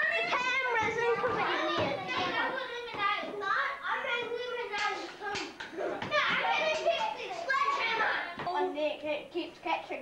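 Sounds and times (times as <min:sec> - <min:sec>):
children chattering and playing: 0:00.0 - 0:10.0.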